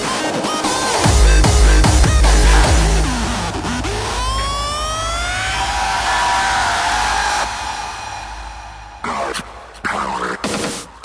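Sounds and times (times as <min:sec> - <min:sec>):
rising siren-like synth sweep: 0:01.9 - 0:09.0.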